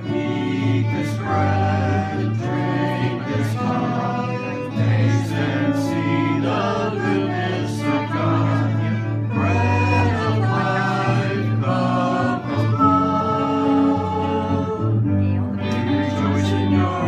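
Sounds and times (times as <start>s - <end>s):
guitar: 0.0s - 17.0s
long held bass notes: 0.0s - 17.0s
voices singing together: 0.0s - 17.0s.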